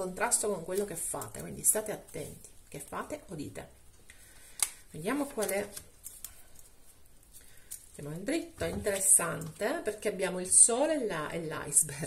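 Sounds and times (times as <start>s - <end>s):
cards tapping and rustling: 4.4s - 6.4s.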